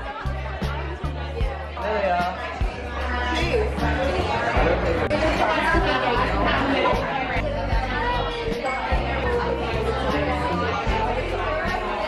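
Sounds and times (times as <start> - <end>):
excited chatter of voices: 0.0 - 12.0.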